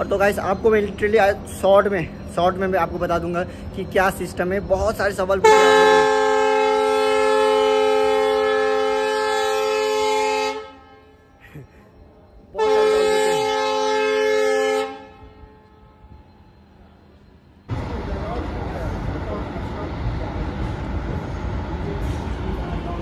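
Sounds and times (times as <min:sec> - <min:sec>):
passing train running noise: 0:00.0 - 0:23.0
train horn blasts: 0:05.3 - 0:11.4, 0:12.5 - 0:16.4.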